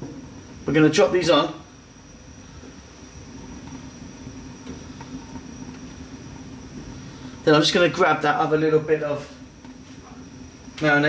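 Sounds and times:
gas burner rumbling: 0.0s - 11.0s.

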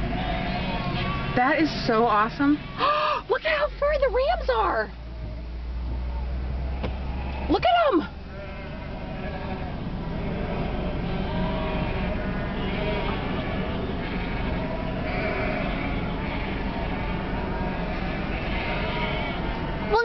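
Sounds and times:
flock of sheep bleating: 0.0s - 4.8s, 6.1s - 20.0s
low steady rumble: 0.0s - 20.0s.

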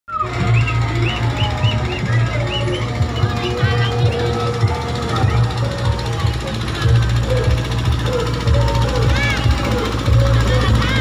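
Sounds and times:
loud music with heavy bass: 0.2s - 11.0s.

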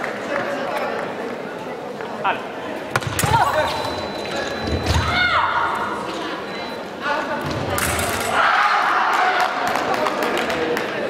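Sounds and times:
murmur of sports hall: 0.0s - 11.0s.

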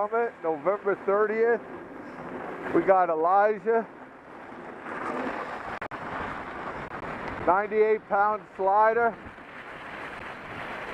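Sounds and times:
wind on microphone: 4.5s - 8.4s, 9.1s - 10.9s
skis sliding on snow: 4.5s - 10.9s.

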